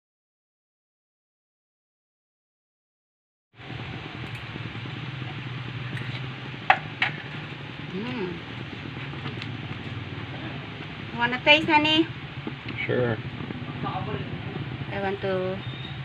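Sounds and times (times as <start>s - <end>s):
gas stove burner hissing: 3.6s - 16.0s
person humming: 7.9s - 8.5s.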